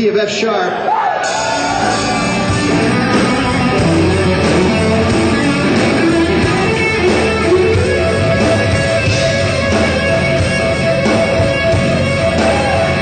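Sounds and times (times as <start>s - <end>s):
rock band playing: 1.2s - 13.0s.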